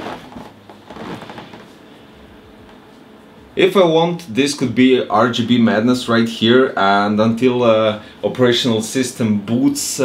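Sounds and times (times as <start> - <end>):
rustling and handling noises: 0.0 - 3.1
faint background hum: 0.0 - 10.0.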